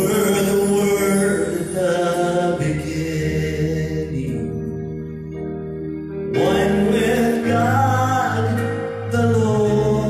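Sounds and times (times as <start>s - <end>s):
long held chords: 0.0s - 10.0s
person singing: 0.0s - 10.0s.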